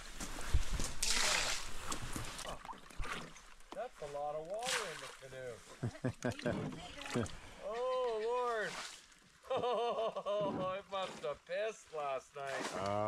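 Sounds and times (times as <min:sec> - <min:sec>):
water splashing onto lake: 0:00.0 - 0:13.0.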